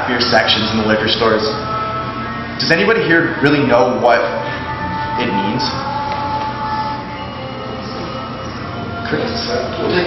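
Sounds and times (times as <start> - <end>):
machinery hum: 0.0 - 10.0.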